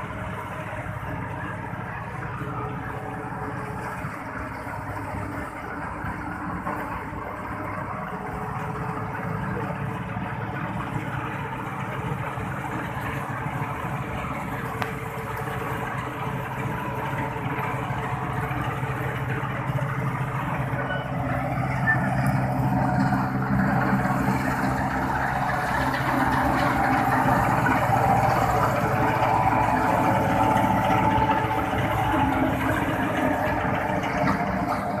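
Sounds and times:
reaper machinery running: 0:00.0 - 0:35.0
tractor diesel engine running: 0:00.0 - 0:35.0.

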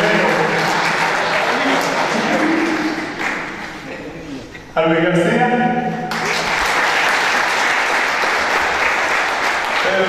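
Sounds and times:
audience applauding: 0:00.0 - 0:03.8, 0:06.1 - 0:10.0.

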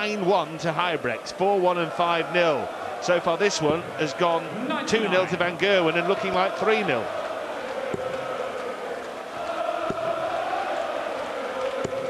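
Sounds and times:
crowd chanting in a hall: 0:01.5 - 0:12.0.

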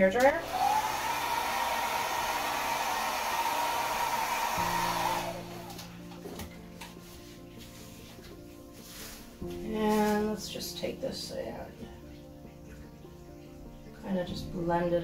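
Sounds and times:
hair dryer blowing: 0:00.2 - 0:05.9.

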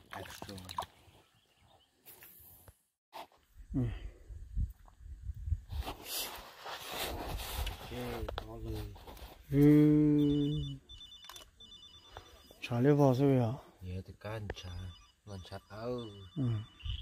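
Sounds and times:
phone ringtone high beeps: 0:10.0 - 0:13.6, 0:14.3 - 0:17.0.

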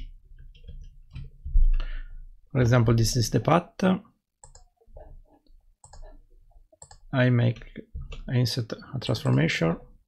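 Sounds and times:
computer mouse clicks: 0:04.4 - 0:05.1, 0:05.8 - 0:07.0.

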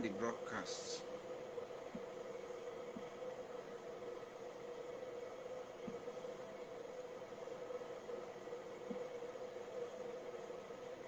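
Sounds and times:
mid-pitched hum: 0:00.0 - 0:11.0
room hiss: 0:00.0 - 0:11.0.

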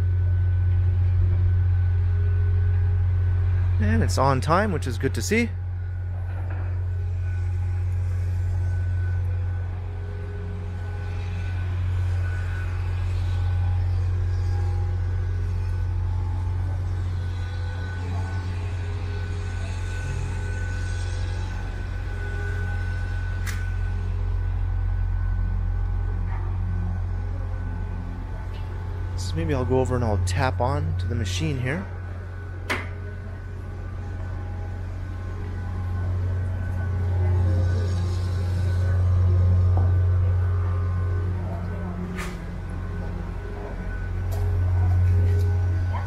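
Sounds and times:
faint steady whine: 0:00.0 - 0:46.0.

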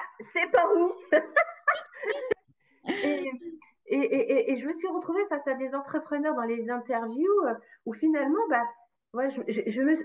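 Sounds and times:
woman laughing: 0:00.9 - 0:03.4.

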